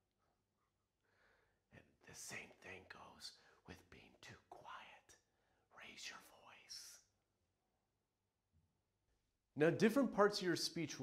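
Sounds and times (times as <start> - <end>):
man whispering: 1.7 - 7.2.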